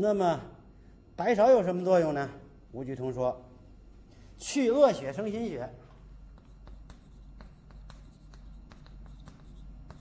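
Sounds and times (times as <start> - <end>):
chalk tapping and scratching: 6.3 - 10.0.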